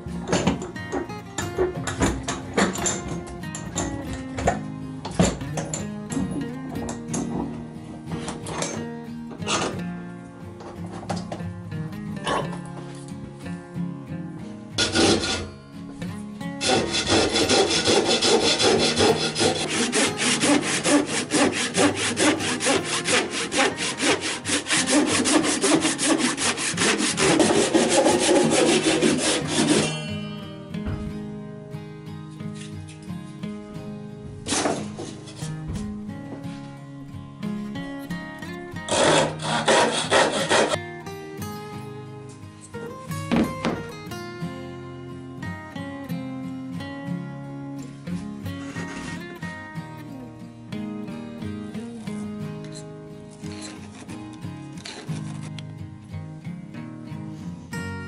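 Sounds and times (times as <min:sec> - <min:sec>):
acoustic guitar music: 0:00.0 - 0:58.0
handsaw cutting wood: 0:14.8 - 0:15.5, 0:16.6 - 0:29.9, 0:38.9 - 0:40.8.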